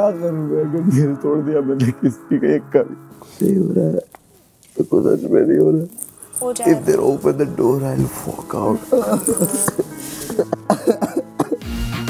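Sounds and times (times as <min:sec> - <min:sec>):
broken vocal sounds: 0:05.8 - 0:11.6.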